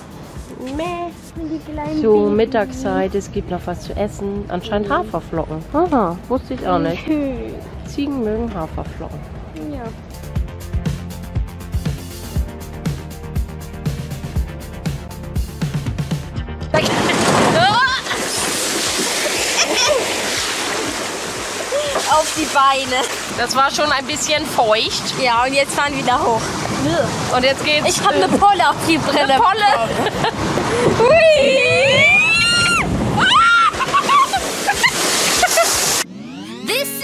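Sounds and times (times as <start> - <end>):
rushing water: 16.8 - 36.1
person laughing squeal: 19.4 - 20.2, 31.2 - 35.8
wind on microphone: 24.0 - 34.4
rising sweep: 35.4 - 37.0
pop music: 36.5 - 37.0.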